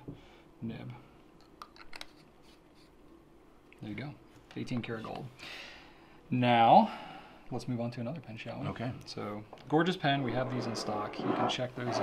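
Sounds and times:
faint rubbing: 10.1 - 12.0.

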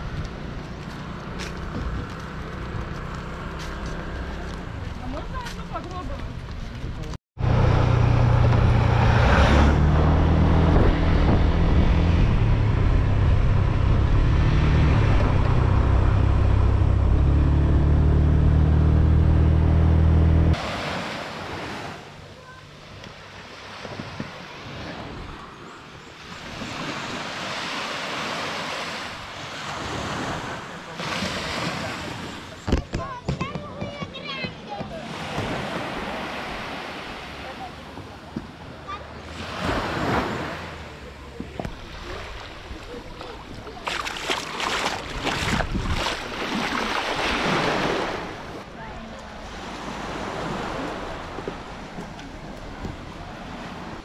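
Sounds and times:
wind buffeting microphone: 9.8 - 17.1, 42.5 - 47.0
surf washing on a beach: 20.6 - 25.6, 26.2 - 32.6, 34.7 - 54.0.

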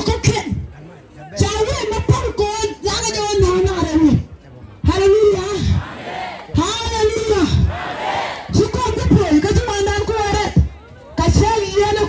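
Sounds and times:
crowd voices: 0.0 - 12.0.

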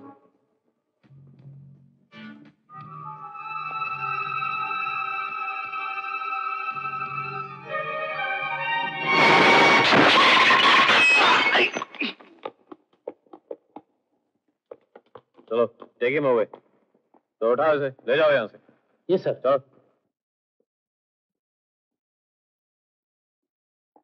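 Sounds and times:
loud crash: 9.0 - 11.9.

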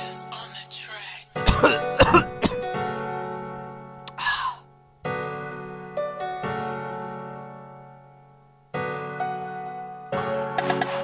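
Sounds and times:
background piano music: 0.0 - 11.0
man coughing and clearing throat: 1.4 - 2.7.

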